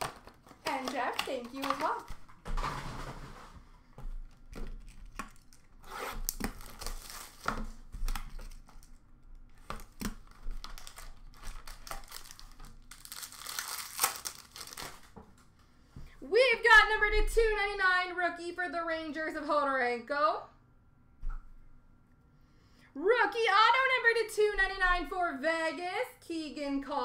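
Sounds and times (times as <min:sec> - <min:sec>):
packaging crinkling and tearing: 0:00.0 - 0:02.6, 0:04.0 - 0:15.2
packaging rustle: 0:00.0 - 0:02.7, 0:03.3 - 0:15.2.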